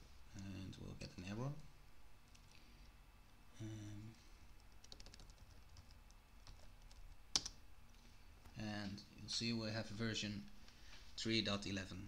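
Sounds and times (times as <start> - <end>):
computer keyboard typing: 4.6 - 7.6.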